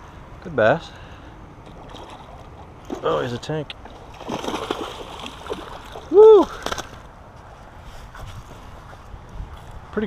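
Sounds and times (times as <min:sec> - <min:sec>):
wind rumble on microphone: 0:07.8 - 0:10.0.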